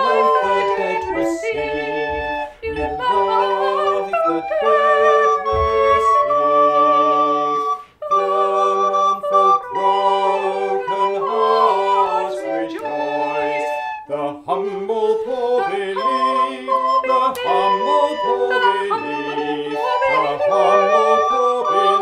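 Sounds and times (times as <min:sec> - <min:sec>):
woman and man singing a hymn: 0:00.0 - 0:22.0
wooden recorders playing: 0:00.0 - 0:22.0.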